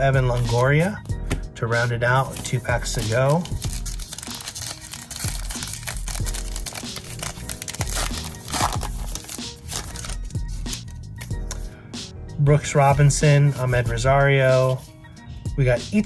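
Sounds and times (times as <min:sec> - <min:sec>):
music with steady beat: 0:00.0 - 0:16.0
wrapper crinkling and tearing: 0:03.3 - 0:10.4.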